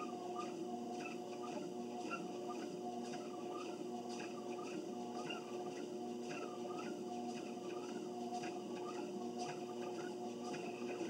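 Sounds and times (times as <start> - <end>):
treadmill belt squeaking: 0.0 - 11.0
treadmill motor hum: 0.0 - 11.0.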